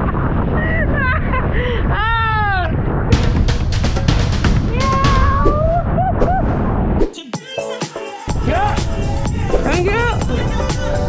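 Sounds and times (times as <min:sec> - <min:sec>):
music with percussive hits: 0:03.1 - 0:05.6.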